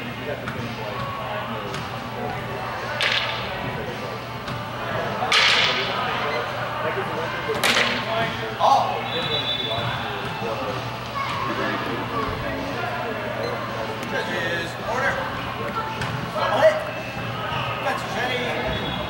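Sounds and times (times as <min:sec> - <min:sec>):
low chatter in sports hall: 0:00.0 - 0:19.0.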